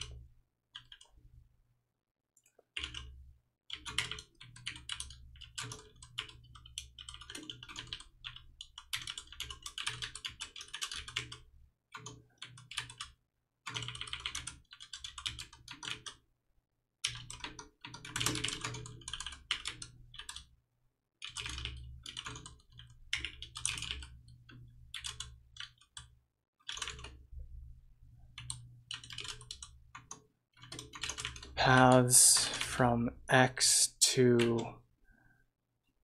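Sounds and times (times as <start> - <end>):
keyboard typing: 28.3 - 32.8.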